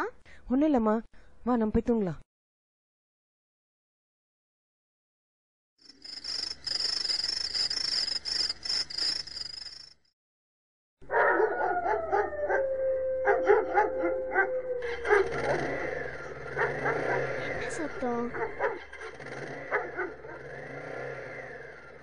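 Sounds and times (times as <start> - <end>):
dogs howling: 11.1 - 18.9, 19.7 - 20.4
dog yips: 13.3 - 15.8, 18.3 - 19.1.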